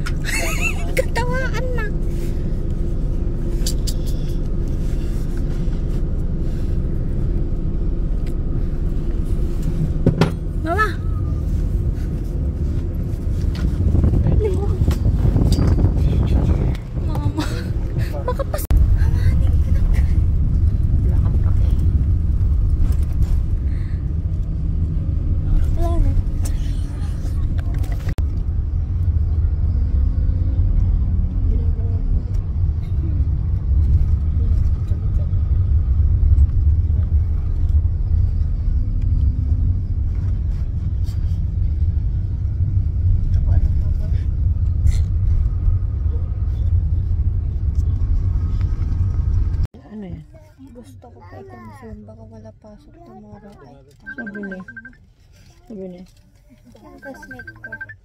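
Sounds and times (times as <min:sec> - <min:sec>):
bus engine and road noise: 0:00.0 - 0:58.0.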